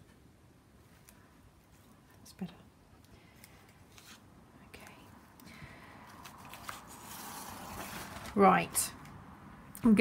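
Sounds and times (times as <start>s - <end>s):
paper and card rustling: 3.3s - 5.0s, 6.0s - 8.9s.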